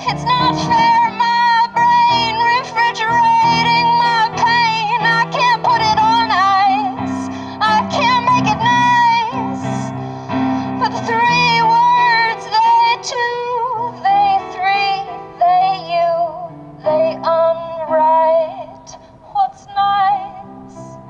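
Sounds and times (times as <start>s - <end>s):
woman singing: 0.0s - 10.0s, 10.6s - 21.0s.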